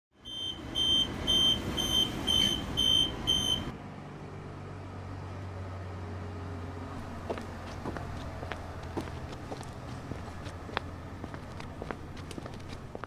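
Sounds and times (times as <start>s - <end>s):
train door warning beeps: 0.2s - 3.7s
train rumbling: 7.0s - 13.0s.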